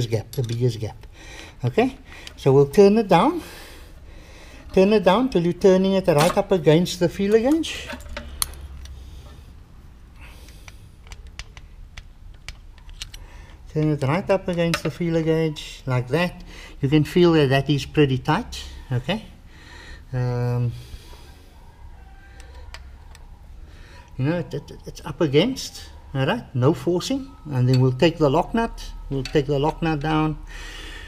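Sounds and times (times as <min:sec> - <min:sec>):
low steady hum: 0:00.0 - 0:31.0
metallic clicks and scrapes: 0:10.4 - 0:15.0.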